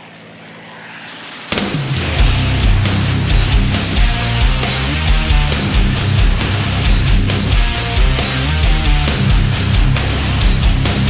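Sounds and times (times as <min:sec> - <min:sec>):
heavy rock music: 0:01.5 - 0:11.0
propeller aircraft engines droning: 0:02.2 - 0:11.0.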